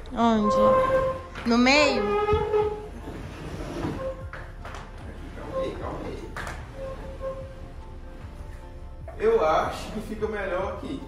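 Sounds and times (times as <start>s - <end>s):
sofa scraping over tile floor: 0.4s - 4.4s.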